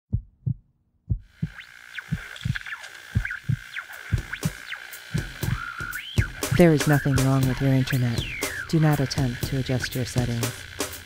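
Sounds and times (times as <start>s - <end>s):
heartbeat thumps: 0.1s - 10.6s
electronic static with high tone: 1.4s - 11.0s
whistling electronic glides: 1.5s - 9.8s.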